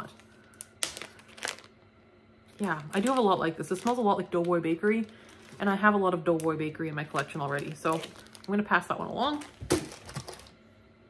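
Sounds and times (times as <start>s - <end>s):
plastic wrapping crinkling: 0.0s - 1.8s, 2.5s - 10.6s.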